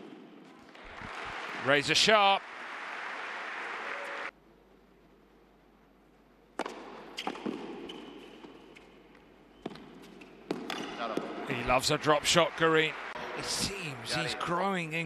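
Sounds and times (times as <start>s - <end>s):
quiet arena background: 0.0s - 15.0s
crowd applause: 0.8s - 4.3s, 11.6s - 14.5s
tennis ball struck by racquets: 6.6s - 8.6s, 9.6s - 11.4s.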